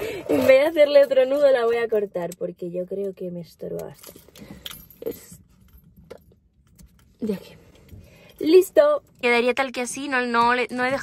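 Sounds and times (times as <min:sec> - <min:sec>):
keys jingling on key ring: 0:00.3 - 0:09.2.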